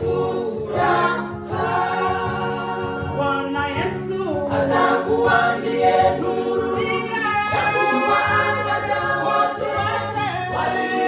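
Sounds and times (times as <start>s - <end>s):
women's choir singing gospel: 0.0s - 11.0s.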